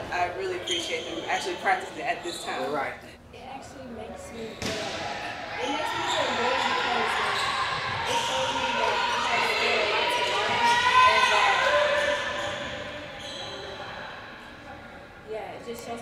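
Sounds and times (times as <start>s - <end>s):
voices: 0.0s - 16.0s
basketball play in echoing hall: 4.4s - 15.3s.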